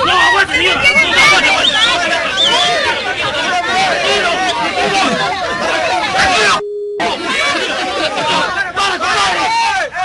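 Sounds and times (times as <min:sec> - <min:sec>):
voices shouting: 0:00.0 - 0:10.0
electronic beep tone: 0:06.4 - 0:07.2.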